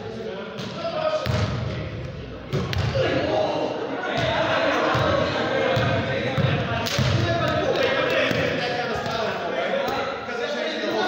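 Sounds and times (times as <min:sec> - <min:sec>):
voices echoing in hall: 0:00.0 - 0:11.0.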